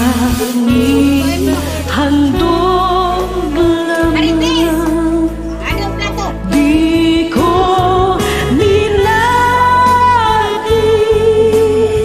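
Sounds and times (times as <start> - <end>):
slow song with singing: 0.0 - 12.0.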